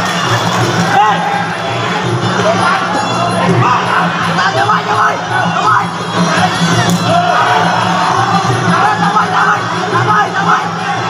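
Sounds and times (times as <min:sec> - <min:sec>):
crowd shouting and cheering: 0:00.0 - 0:11.0
drumming: 0:00.0 - 0:11.0.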